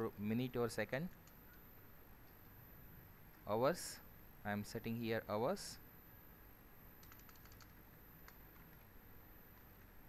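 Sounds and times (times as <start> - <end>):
computer keyboard keystrokes: 7.0 - 8.9, 9.5 - 10.0.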